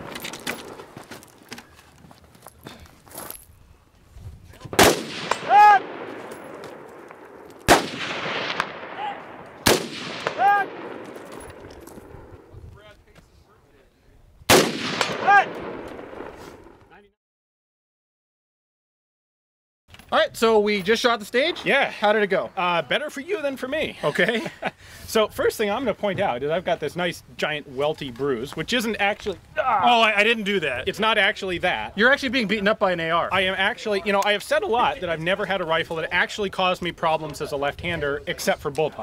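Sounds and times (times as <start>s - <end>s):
rifle shots echoing: 4.7s - 12.4s, 14.5s - 16.8s.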